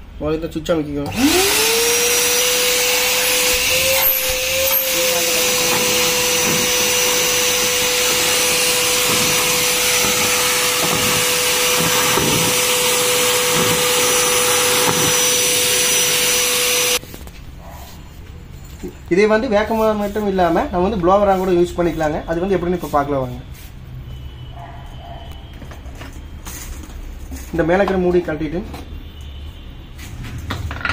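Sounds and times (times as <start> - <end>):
vacuum cleaner whining: 1.0 - 17.0.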